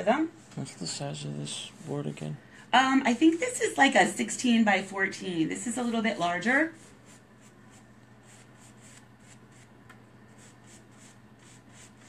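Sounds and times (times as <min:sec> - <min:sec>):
paintbrush scratching on wood: 0:03.0 - 0:04.3, 0:06.4 - 0:09.7, 0:10.3 - 0:12.0.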